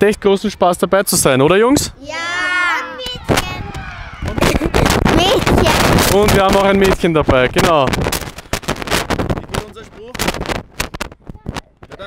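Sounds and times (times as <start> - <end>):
boys shouting a cheer: 2.2 - 5.9.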